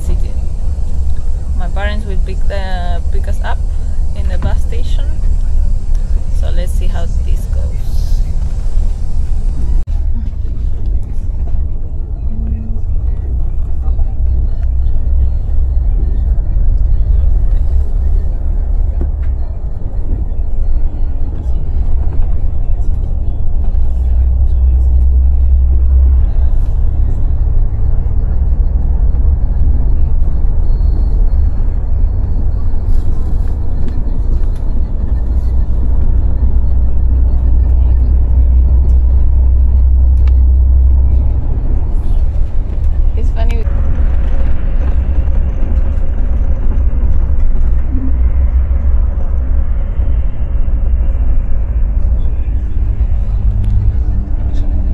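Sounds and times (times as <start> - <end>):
bus engine rumble inside cabin: 0.0 - 54.9.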